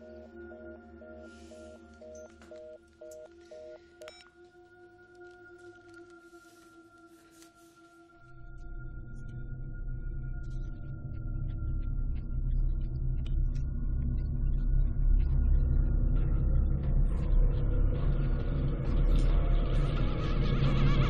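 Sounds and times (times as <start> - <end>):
low rumbling drone: 8.2 - 21.0.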